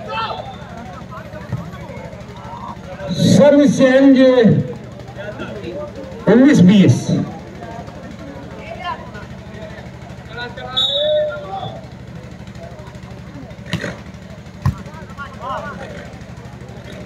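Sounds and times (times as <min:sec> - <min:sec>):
people shouting and calling: 0:00.0 - 0:07.6, 0:09.8 - 0:12.0
steady low hum: 0:03.0 - 0:08.4
volleyball struck: 0:13.6 - 0:14.9.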